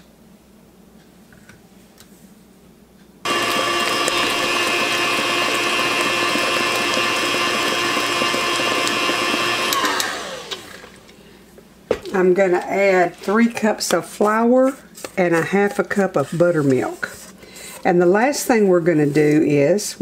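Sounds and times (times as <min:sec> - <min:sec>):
stand mixer running: 0:03.3 - 0:11.2.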